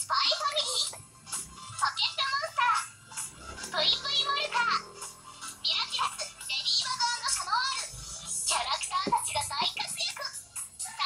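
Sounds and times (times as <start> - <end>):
television music: 0.0 - 11.0.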